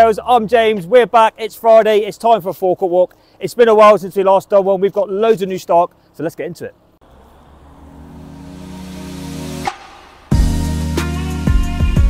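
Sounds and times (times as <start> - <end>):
short upward swish: 7.2 - 10.4
held chord background music: 7.4 - 12.0.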